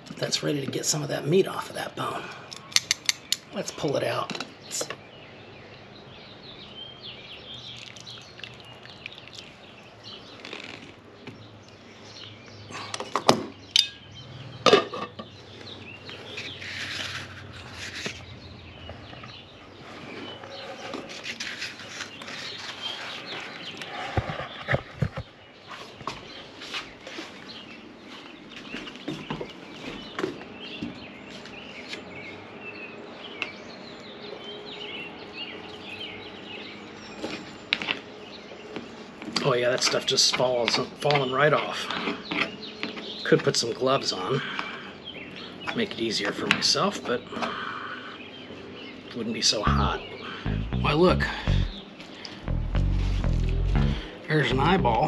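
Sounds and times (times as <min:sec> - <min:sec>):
birds chirping and calling: 0:00.4 - 0:55.0.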